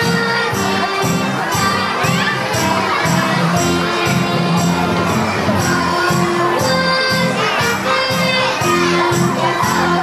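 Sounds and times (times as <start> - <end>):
children shouting: 0.0 - 10.0
crowd noise: 0.0 - 10.0
music with steady beat: 0.0 - 10.0.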